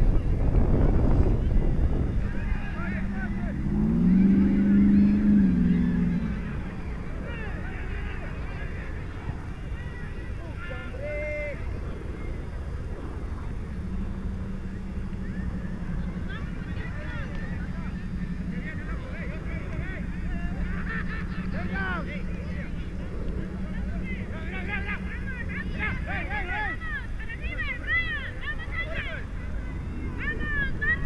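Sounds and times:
steady low hum: 0:00.0 - 0:31.0
distant players calling out: 0:02.1 - 0:31.0.

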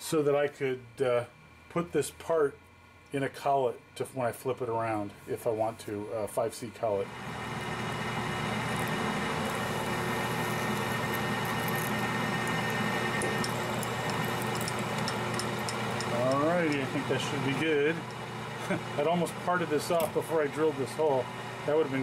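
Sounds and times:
lathe motor humming: 0:07.1 - 0:22.0
drill scraping metal: 0:07.4 - 0:18.4.

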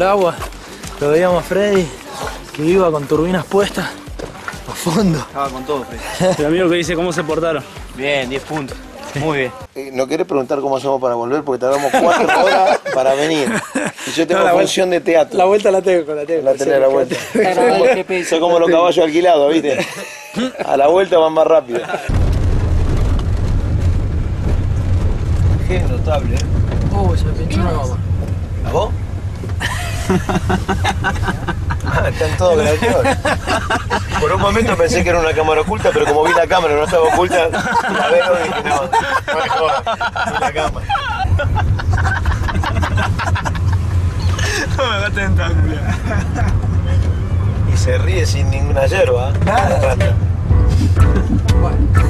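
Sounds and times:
car driving rumble from inside: 0:22.1 - 0:52.0.

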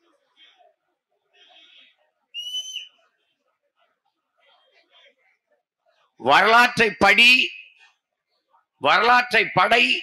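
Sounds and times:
shrill whistle: 0:02.3 - 0:03.0.

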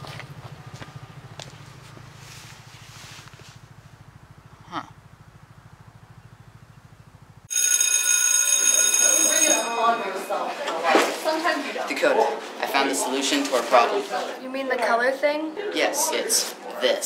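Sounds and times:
electric school bell ringing: 0:07.5 - 0:10.9
voices: 0:08.9 - 0:17.0.

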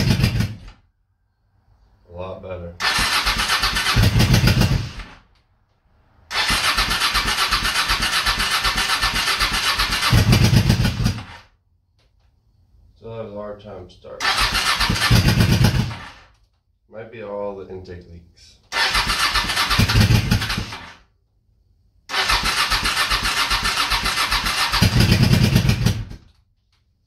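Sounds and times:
motorcycle electric starter cranking: 0:00.0 - 0:00.8, 0:02.8 - 0:05.2, 0:06.3 - 0:11.5, 0:14.2 - 0:16.5, 0:18.7 - 0:21.0, 0:22.1 - 0:26.4.

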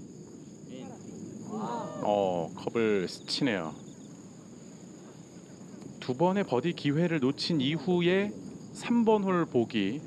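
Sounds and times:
faint background noise: 0:00.0 - 0:10.0
high-pitched insect drone: 0:00.0 - 0:10.0.

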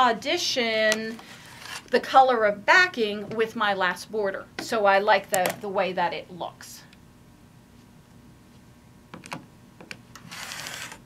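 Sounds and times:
rotary cutter slicing fabric: 0:10.2 - 0:11.0.

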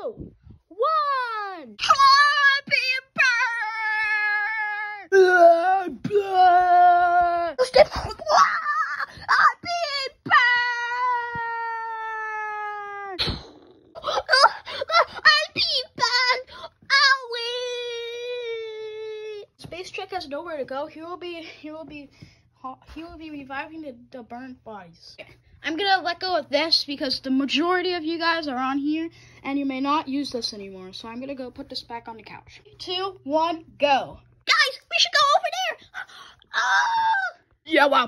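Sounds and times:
child crying and wailing: 0:00.0 - 0:19.6, 0:35.7 - 0:37.5.

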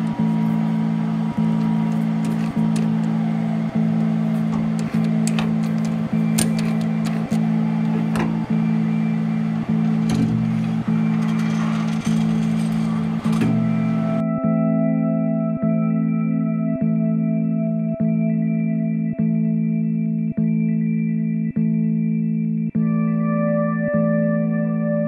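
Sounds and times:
guitar music with steady beat: 0:00.0 - 0:25.0.

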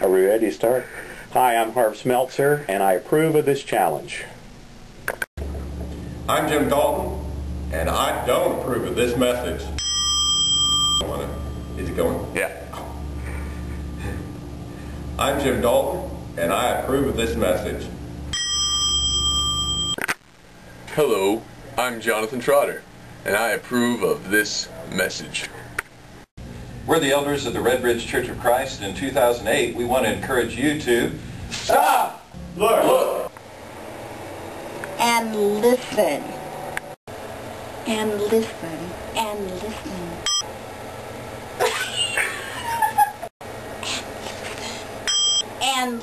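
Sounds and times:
small bell ringing: 0:18.3 - 0:20.0.

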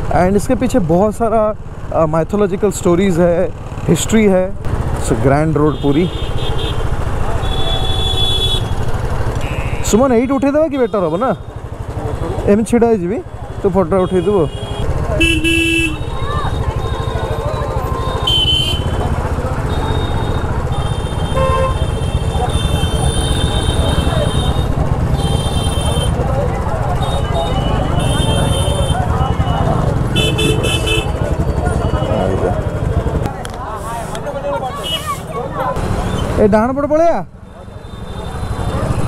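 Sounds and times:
vehicle horn toot: 0:07.4 - 0:08.8, 0:09.4 - 0:10.1, 0:14.0 - 0:26.2, 0:27.0 - 0:32.4
high-pitched horn toots: 0:09.4 - 0:10.0
faint crowd voices: 0:11.1 - 0:12.6, 0:13.2 - 0:36.4, 0:37.3 - 0:39.0.

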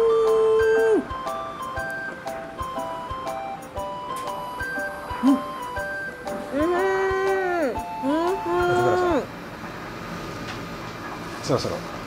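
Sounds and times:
light bouncy background music: 0:00.0 - 0:09.4.

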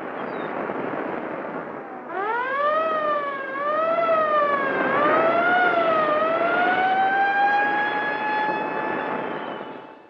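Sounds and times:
high wailing tone: 0:02.1 - 0:09.8.

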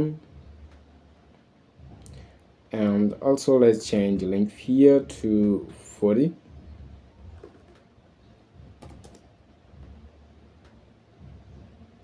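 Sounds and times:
computer keyboard keystrokes: 0:08.8 - 0:09.3.

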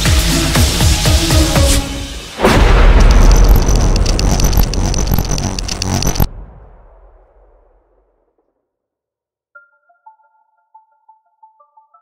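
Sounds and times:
thunder crack and rumble: 0:02.4 - 0:05.3
electronic music: 0:02.8 - 0:06.3.

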